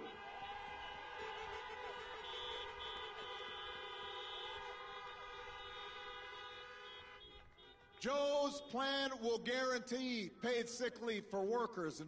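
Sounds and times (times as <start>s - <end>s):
many car horns honking: 0.0s - 8.9s.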